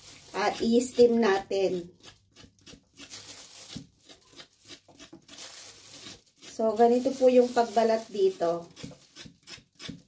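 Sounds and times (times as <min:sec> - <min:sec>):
knife scraping gourd skin: 0:00.0 - 0:10.0.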